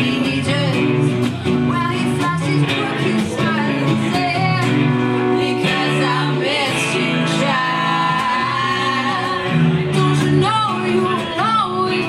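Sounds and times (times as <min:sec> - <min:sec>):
acoustic and electric guitar: 0:00.0 - 0:12.0
women singing in harmony: 0:01.7 - 0:12.0.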